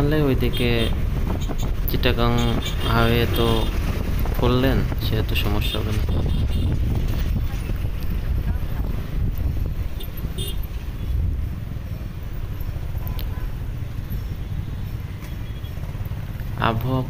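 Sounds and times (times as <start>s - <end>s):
wind rumble on microphone: 0.0s - 14.3s
motorcycle running: 0.0s - 17.0s
sharp traffic sounds: 0.0s - 17.0s.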